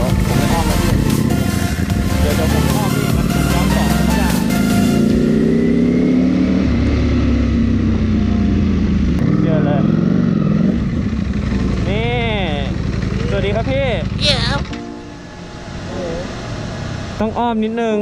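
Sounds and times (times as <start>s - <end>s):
motorcycle engine idling: 0.0s - 4.2s, 10.8s - 14.2s
person speaking: 14.2s - 14.7s.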